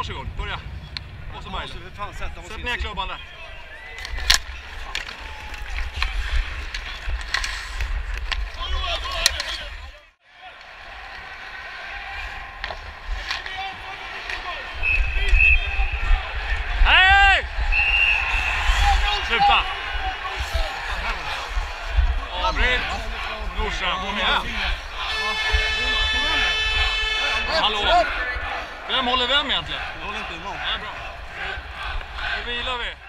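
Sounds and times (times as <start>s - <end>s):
arena crowd noise: 1.6s - 33.0s
skates and sticks scraping ice: 3.9s - 16.7s, 18.2s - 32.6s
stick clacking on puck: 4.0s - 9.6s
loud shout: 10.3s - 33.0s
referee's whistle blasts: 14.7s - 16.0s, 17.7s - 18.8s, 25.1s - 27.9s.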